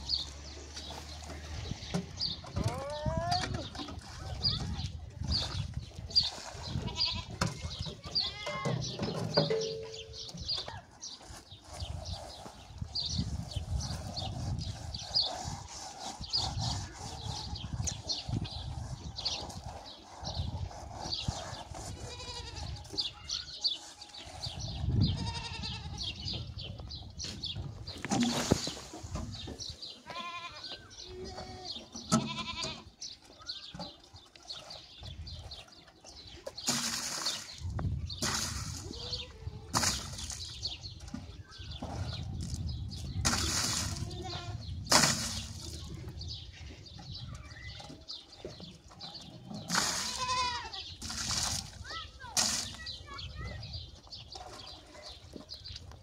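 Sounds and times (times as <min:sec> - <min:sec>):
goats bleating: 0:22.0 - 0:22.8, 0:25.1 - 0:26.2, 0:30.0 - 0:32.9, 0:50.0 - 0:50.8
water poured from a jug: 0:36.6 - 0:39.0, 0:43.2 - 0:44.1, 0:44.9 - 0:45.9, 0:49.7 - 0:52.8.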